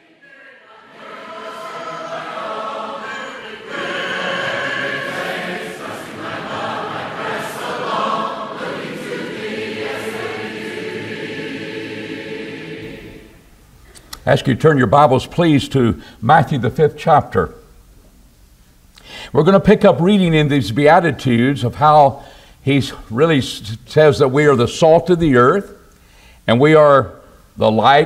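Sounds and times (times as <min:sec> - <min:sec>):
choir singing: 0:00.0 - 0:13.5.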